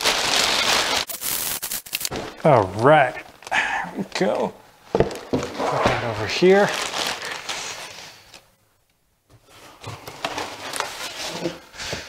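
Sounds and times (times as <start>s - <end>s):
plastic wrap rustling: 0.0s - 8.5s, 9.4s - 11.6s.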